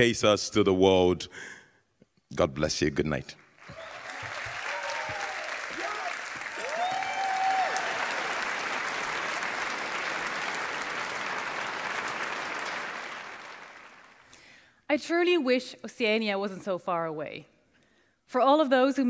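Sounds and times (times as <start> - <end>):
audience applauding: 3.4 - 14.5
voices cheering: 3.6 - 13.8
person whooping: 3.7 - 8.3.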